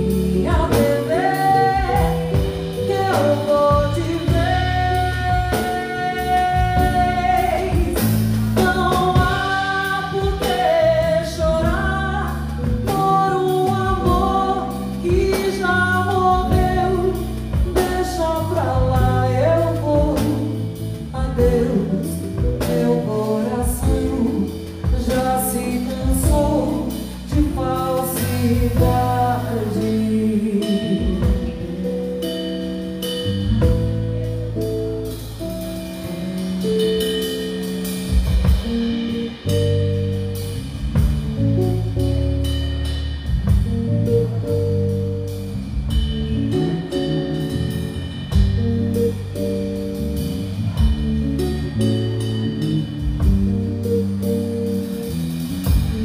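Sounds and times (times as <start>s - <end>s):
woman singing: 0.0s - 34.0s
drum kit: 0.0s - 56.0s
guitar: 0.0s - 56.0s.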